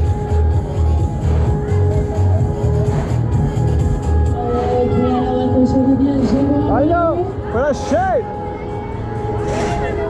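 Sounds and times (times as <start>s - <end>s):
fairground ride music: 0.0s - 10.0s.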